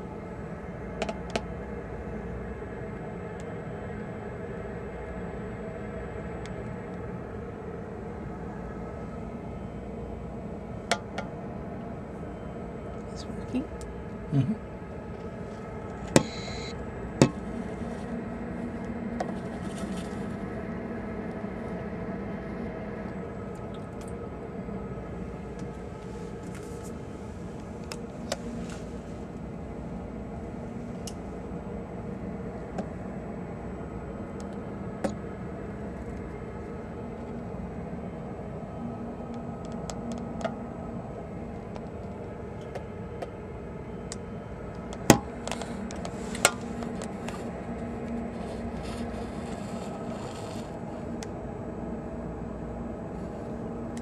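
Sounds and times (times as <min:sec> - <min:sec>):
ship machinery humming: 0:00.0 - 0:54.0.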